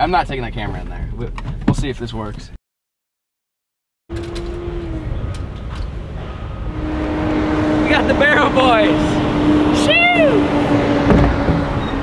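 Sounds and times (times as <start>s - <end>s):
vehicle engine rumbling: 4.1s - 12.0s.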